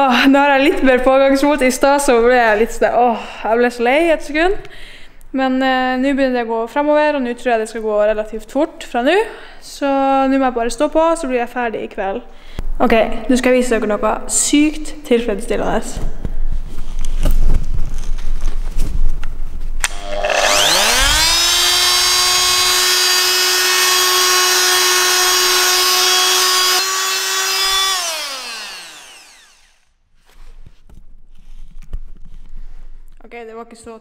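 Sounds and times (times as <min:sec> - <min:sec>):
electric sander motor whine: 0:19.8 - 0:29.8.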